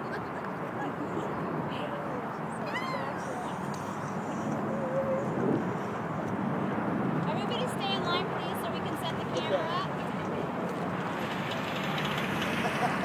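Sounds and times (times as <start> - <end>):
street traffic: 0.0 - 13.0
people shouting and whooping: 2.6 - 3.8.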